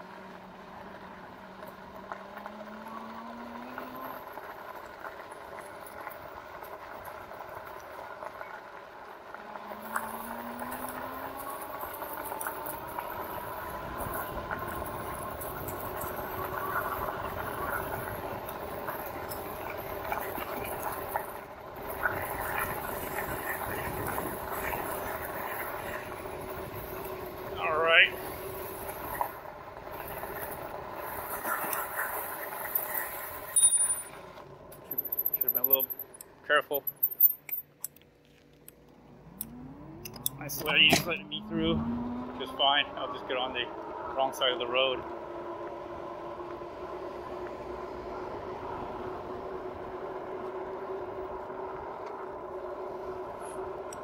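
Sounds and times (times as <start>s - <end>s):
electric hub motor whining: 0.0s - 36.3s, 38.0s - 54.0s.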